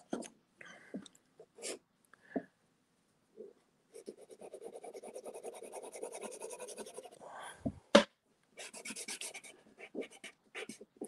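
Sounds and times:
pastel scratching on board: 0:04.0 - 0:07.2, 0:08.6 - 0:10.8.

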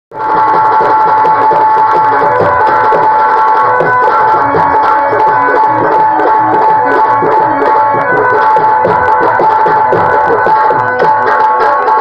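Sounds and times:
hand drum rhythm: 0:00.1 - 0:12.0
held melodic notes: 0:00.2 - 0:12.0.

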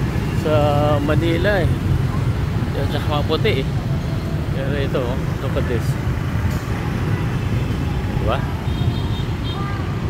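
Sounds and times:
city street traffic rumble: 0:00.0 - 0:10.0.

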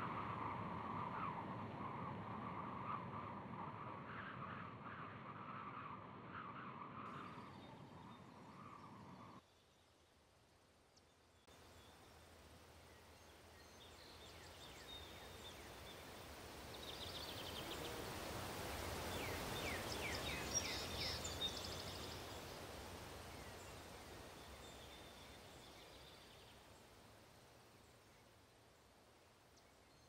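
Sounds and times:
small birds chirping: 0:00.0 - 0:09.4, 0:11.3 - 0:26.8
faint outdoor ambience: 0:00.0 - 0:30.0.

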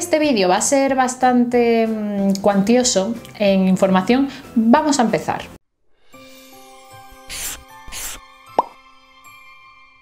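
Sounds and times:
rising bloop pop effect: 0:08.0 - 0:08.8.

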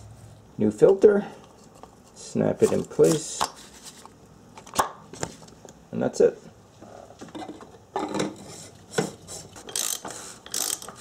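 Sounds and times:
ratchet wrench clicking: 0:09.7 - 0:11.0.

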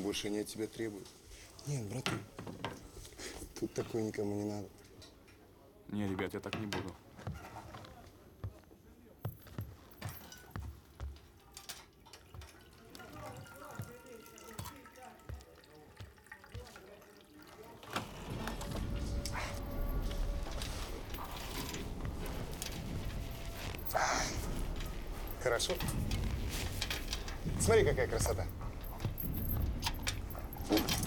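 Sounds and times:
faint music: 0:07.4 - 0:31.0
water running into metal mug: 0:12.2 - 0:17.9
low rumble: 0:18.1 - 0:31.0.

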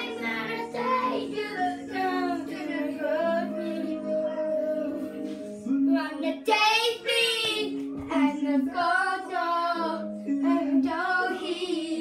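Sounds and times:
backing music: 0:00.0 - 0:12.0
child singing a pop song: 0:00.0 - 0:12.0.

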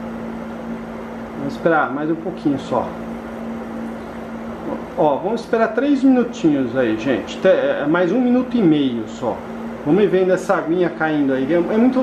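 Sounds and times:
fan airflow rush: 0:00.0 - 0:12.0
low machine hum: 0:00.0 - 0:12.0.

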